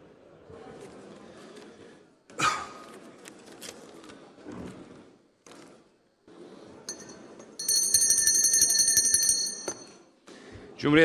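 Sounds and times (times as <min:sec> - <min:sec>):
electric bell ringing: 0:06.9 - 0:10.0.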